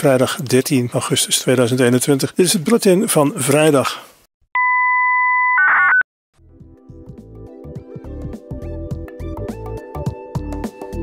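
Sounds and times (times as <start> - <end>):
electronic beep tone: 4.6 - 6.0
soft music: 6.4 - 11.0.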